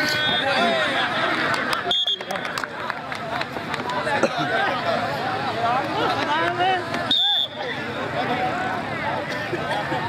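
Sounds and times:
people calling and talking: 0.0s - 10.0s.

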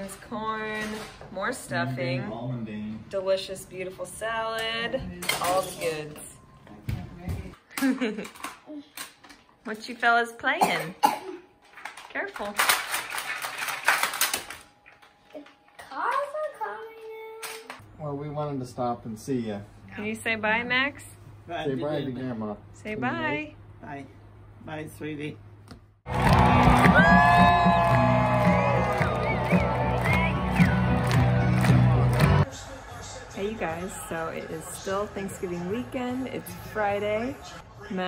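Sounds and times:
crowd cheering and whooping: 26.1s - 32.4s
steady drum beat: 26.3s - 32.4s.

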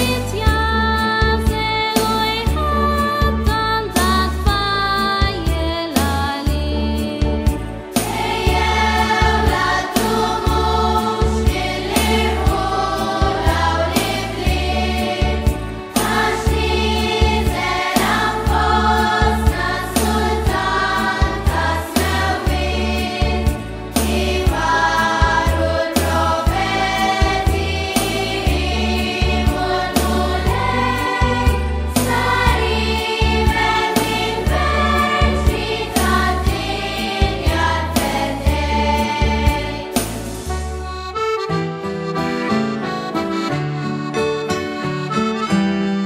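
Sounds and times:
choir singing a carol over a beat: 0.0s - 4.5s, 7.9s - 40.6s.

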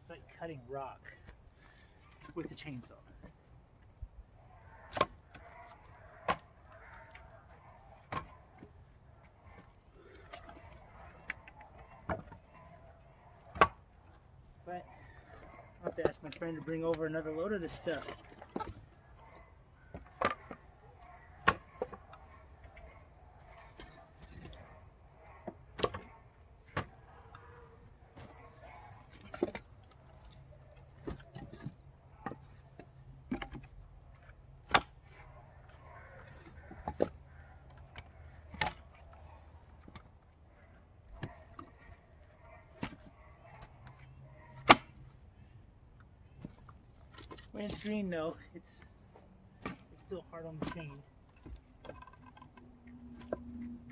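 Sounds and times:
firewood pieces clacking: 1.1s - 53.9s.

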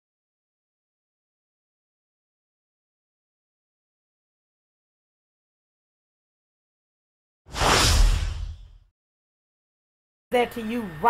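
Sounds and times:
whoosh: 7.5s - 8.8s.

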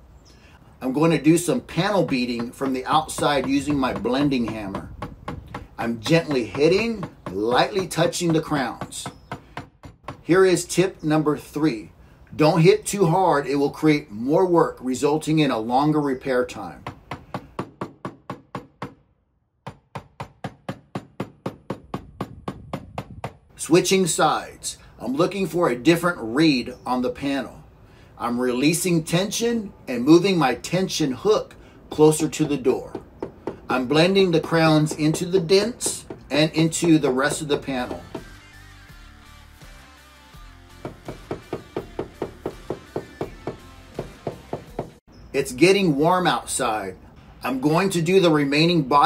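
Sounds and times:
hammer tapping metal panel: 1.4s - 10.3s
hammer tapping on metal panel: 1.5s - 10.3s, 16.8s - 19.0s, 19.6s - 23.5s, 32.2s - 38.4s, 40.8s - 45.0s
background music: 37.9s - 45.0s.

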